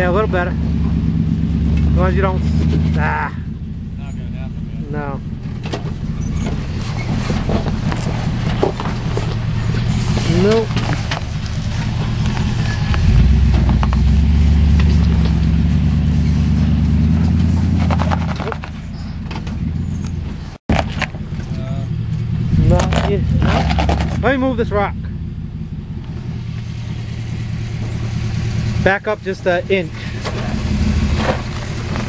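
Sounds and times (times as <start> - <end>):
truck engine running under load: 0.0 - 32.0.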